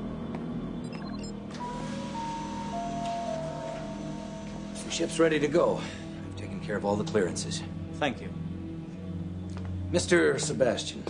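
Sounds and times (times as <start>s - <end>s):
low held music tones: 1.4s - 11.0s
higher sustained tone: 1.5s - 5.8s.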